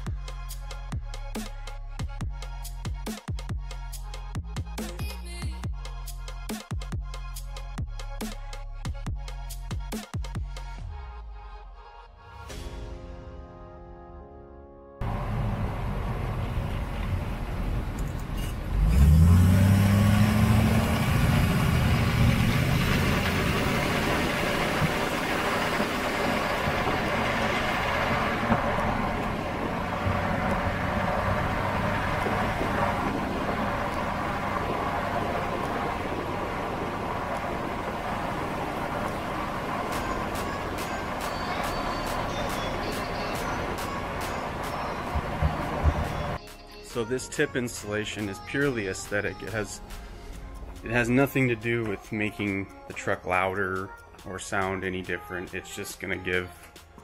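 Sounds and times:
diesel engine revving and idling: 15.0 - 46.4.

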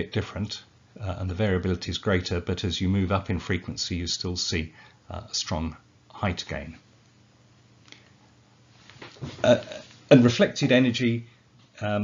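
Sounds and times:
man saying uh: 0.0 - 6.8, 9.4 - 12.0.

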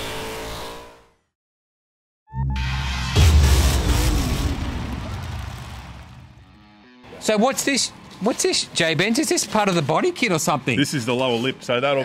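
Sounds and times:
engine-like rumble falling in pitch: 2.3 - 6.9.

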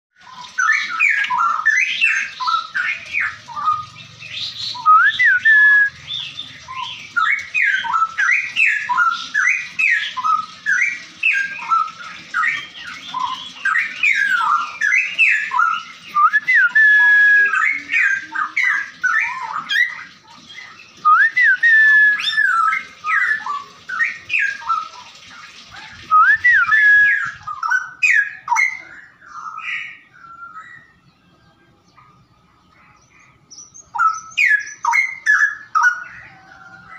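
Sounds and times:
songbird singing whistled notes: 0.2 - 25.2, 26.0 - 36.9.

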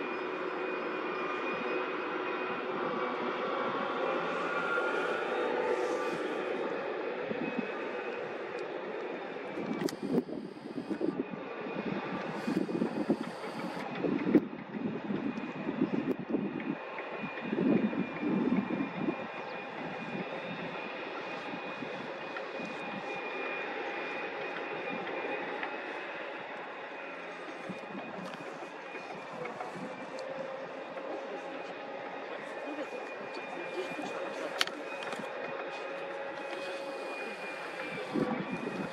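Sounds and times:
construction machinery engine drone: 0.0 - 38.9.

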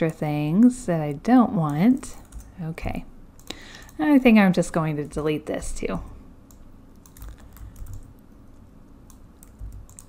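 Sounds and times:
computer keyboard clicks: 6.5 - 8.1, 9.1 - 10.0.

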